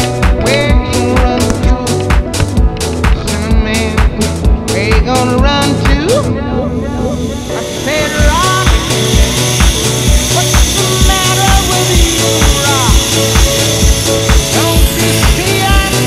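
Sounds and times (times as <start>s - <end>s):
music with steady beat and vocals: 0.0s - 16.0s.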